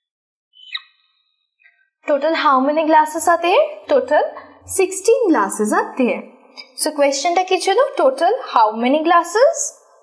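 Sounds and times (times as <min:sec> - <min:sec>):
whiteboard marker squeaking: 0:00.6 - 0:01.1.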